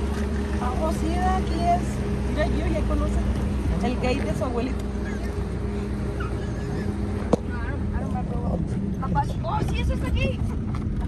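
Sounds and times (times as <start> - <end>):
car engine and road drone: 0.0 - 11.0
constant hum: 0.0 - 11.0.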